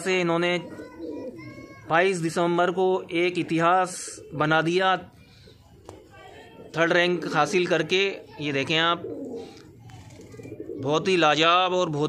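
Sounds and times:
pigeons cooing softly: 0.0s - 11.7s.

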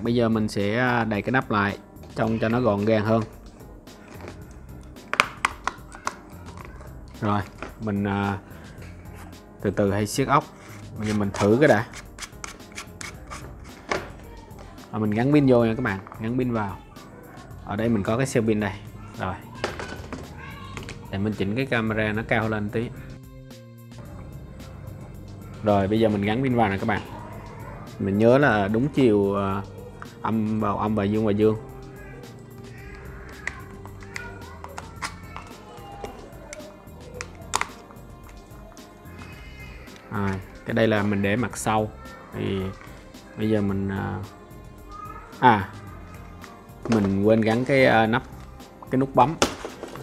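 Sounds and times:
faint background music: 0.0s - 50.0s
battery clicking into plastic holder: 4.1s - 6.8s, 11.1s - 14.1s, 33.0s - 35.6s, 36.5s - 38.4s.

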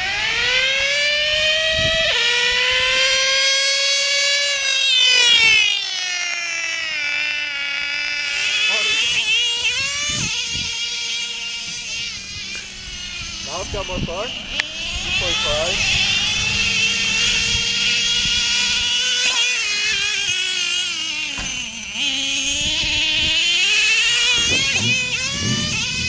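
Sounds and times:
rc car engine whining: 0.0s - 26.0s.

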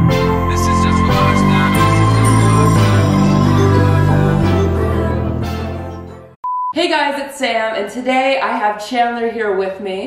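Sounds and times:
intro music: 0.0s - 6.4s
short electronic beep: 6.4s - 6.8s
woman speaking: 6.8s - 10.0s.

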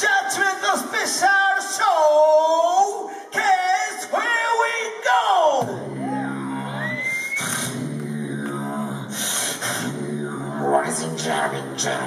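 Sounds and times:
person beatboxing through speakers: 5.6s - 12.0s.

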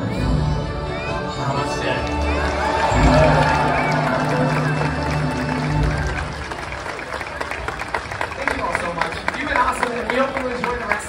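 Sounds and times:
audience applauding: 1.8s - 11.0s.

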